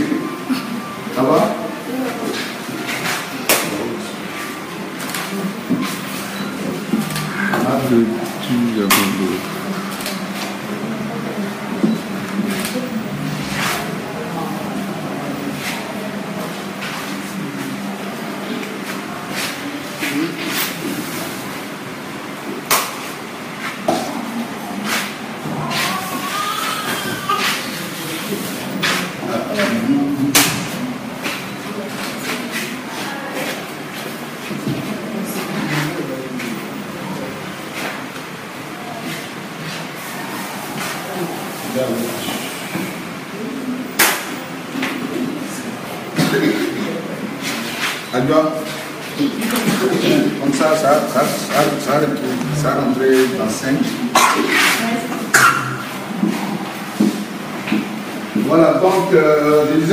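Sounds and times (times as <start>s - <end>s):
indistinct voices: 0.0s - 59.9s.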